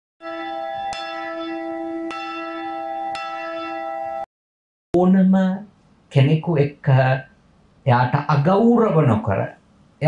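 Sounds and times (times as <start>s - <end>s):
bell ringing: 0.2s - 4.3s.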